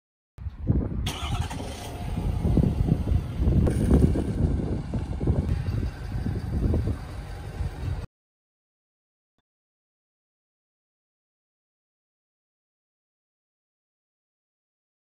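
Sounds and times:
truck engine running: 1.1s - 8.1s.

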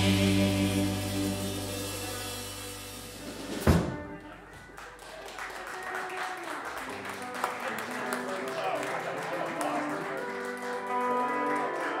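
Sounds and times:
slow country ballad on guitars: 0.0s - 3.6s.

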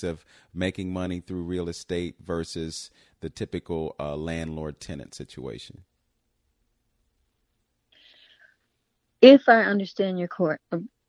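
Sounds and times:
person breathing: 0.2s - 0.6s, 2.9s - 3.2s, 7.9s - 8.7s.

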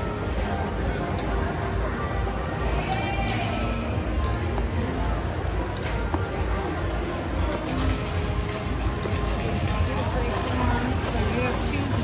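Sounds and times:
background chatter: 0.0s - 12.0s
music: 0.0s - 12.0s.

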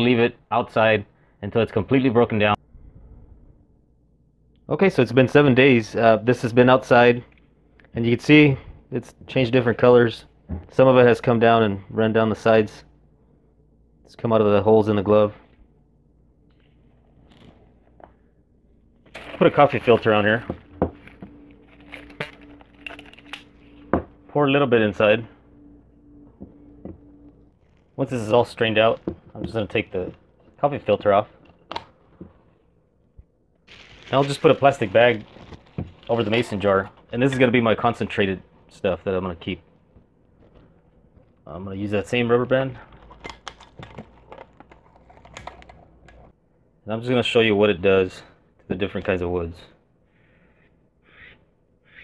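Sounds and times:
steady low hum: 0.0s - 51.9s
plastic bag crinkling: 19.0s - 23.8s, 33.7s - 37.2s.

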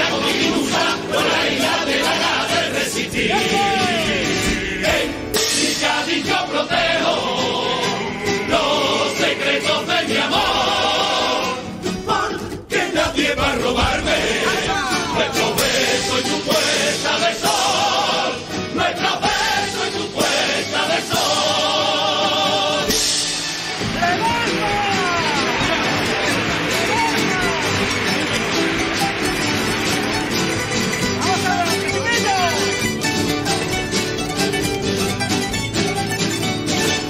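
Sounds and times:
choir singing held notes: 0.0s - 31.2s
crowd shouting: 0.0s - 32.7s
plucked string band playing: 0.0s - 37.0s.

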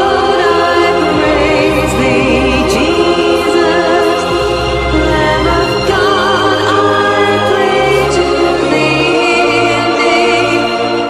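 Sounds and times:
choir singing sustained chords: 0.0s - 11.0s
wavering high melody: 0.0s - 11.0s.

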